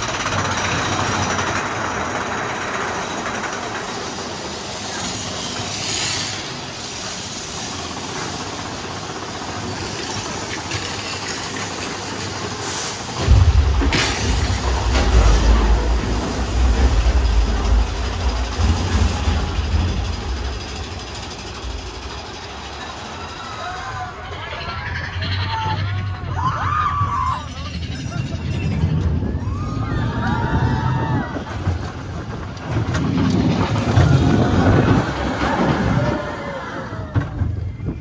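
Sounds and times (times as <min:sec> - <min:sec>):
roller coaster cars rattling: 0:00.0 - 0:38.0
deep rumble: 0:12.4 - 0:38.0
riders shouting: 0:34.1 - 0:37.3.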